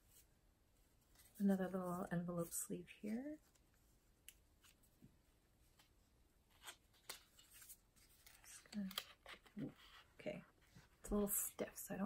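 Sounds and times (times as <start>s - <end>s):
paper envelope rustling: 5.7s - 11.0s.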